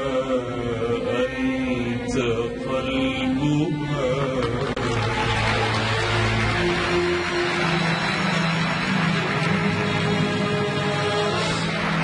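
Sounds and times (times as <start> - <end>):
orchestra with violins and accordion: 0.0 - 12.0.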